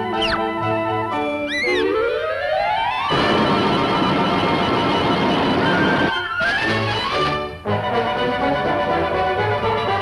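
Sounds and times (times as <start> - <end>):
cartoon orchestral music: 0.0 - 3.1
cartoon squeaks: 0.1 - 0.5, 1.4 - 2.0.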